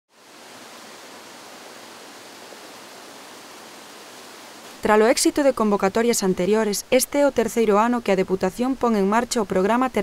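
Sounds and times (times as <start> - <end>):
water jets rushing and splashing: 0.1 - 5.1.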